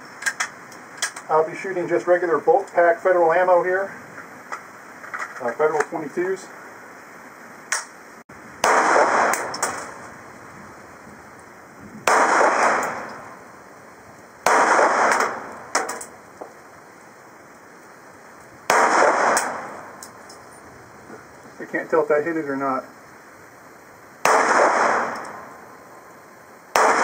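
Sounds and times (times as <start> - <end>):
pistol shots with echo: 8.6 - 9.9, 12.0 - 13.2, 14.4 - 16.0, 18.7 - 19.9, 24.2 - 25.5, 26.7 - 27.0.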